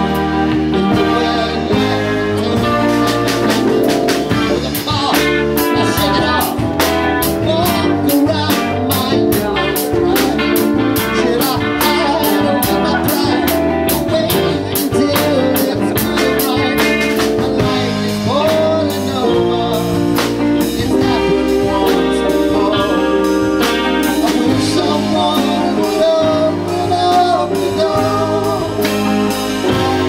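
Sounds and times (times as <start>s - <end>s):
drum kit beat: 0.0s - 30.0s
guitars: 0.0s - 30.0s
keyboard: 0.0s - 30.0s
man singing: 0.0s - 30.0s.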